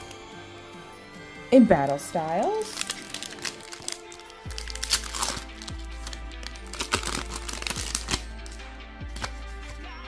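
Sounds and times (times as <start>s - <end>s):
background music: 0.0s - 10.0s
foil pack crinkling: 1.8s - 9.8s.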